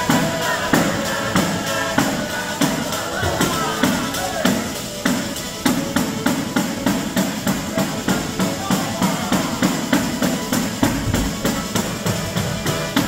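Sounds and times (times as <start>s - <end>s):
folk band playing a dance tune: 0.0s - 13.0s
frame drums with jingles: 0.0s - 13.0s
violin: 0.0s - 13.0s.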